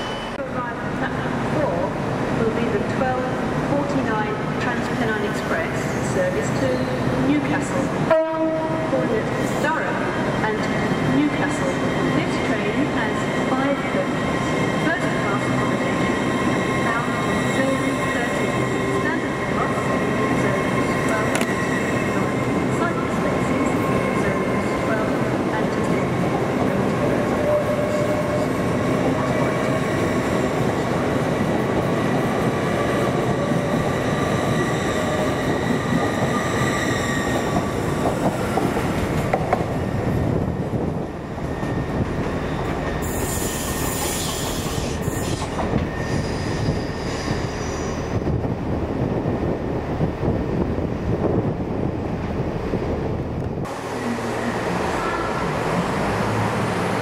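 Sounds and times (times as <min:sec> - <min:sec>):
train drive whine: 0:00.0 - 0:57.0
wheels rumbling on rail: 0:00.0 - 0:57.0.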